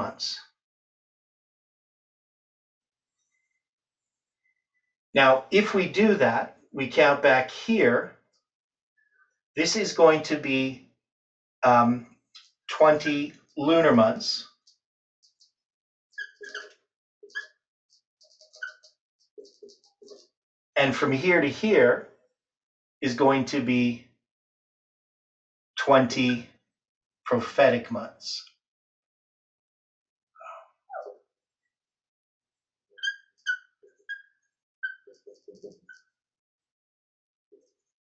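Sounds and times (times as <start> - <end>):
marker squeaking on whiteboard: 15.2 - 20.3, 30.9 - 31.2, 33.0 - 36.1.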